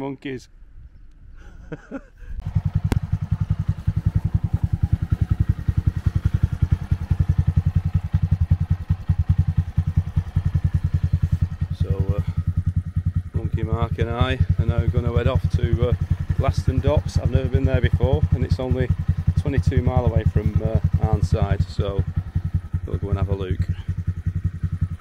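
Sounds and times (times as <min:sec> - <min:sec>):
motorcycle engine idling: 0:02.4 - 0:25.0.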